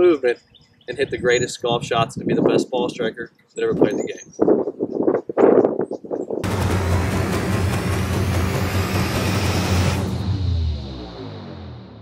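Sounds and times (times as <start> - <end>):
deep bass rumble: 6.4 - 12.0
faint rising sweep: 6.4 - 12.0
loud whooshing swell: 6.4 - 12.0.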